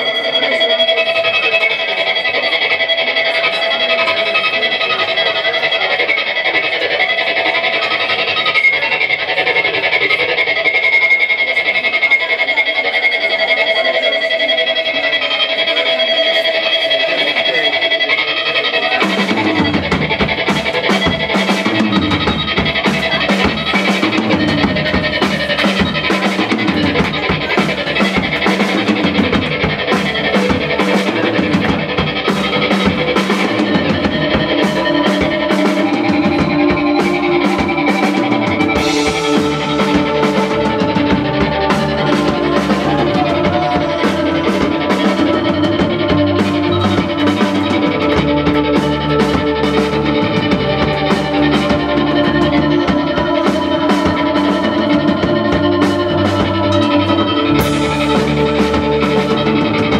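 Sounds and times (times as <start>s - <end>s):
drum kit with cymbal hits: 0.0s - 59.9s
electric guitar: 0.0s - 59.9s
electric bass: 19.0s - 59.9s.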